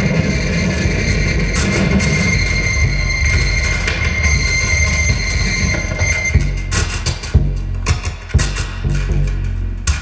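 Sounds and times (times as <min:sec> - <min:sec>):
sharp hit: 0:00.0 - 0:07.4
low synthesizer rumble: 0:00.0 - 0:10.0
high whistling tones: 0:00.1 - 0:07.1.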